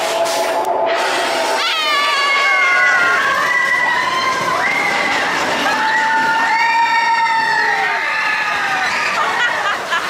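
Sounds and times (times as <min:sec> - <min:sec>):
riders screaming: 0:01.6 - 0:09.8.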